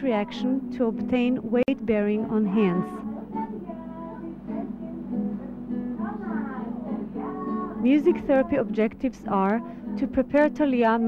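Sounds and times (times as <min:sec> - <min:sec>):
instrumental accompaniment: 0:00.0 - 0:11.0
person singing softly: 0:01.6 - 0:10.8.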